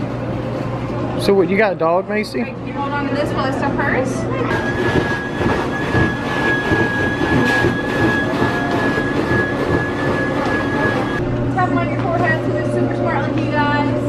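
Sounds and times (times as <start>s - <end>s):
stuffing machine whine and rush: 4.5s - 11.2s.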